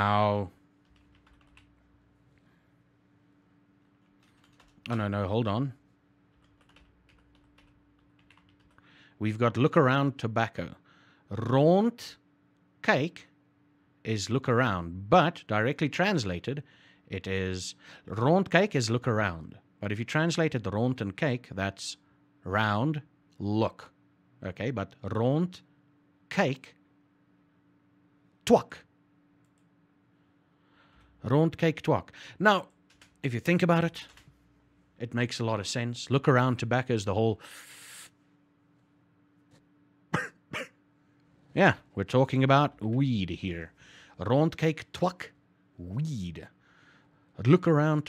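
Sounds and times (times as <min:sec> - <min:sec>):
faint steady hum: 0:00.0 - 0:48.0
soft keyboard typing: 0:00.8 - 0:01.9, 0:03.8 - 0:05.1, 0:06.3 - 0:08.8, 0:29.4 - 0:29.7, 0:32.6 - 0:34.4.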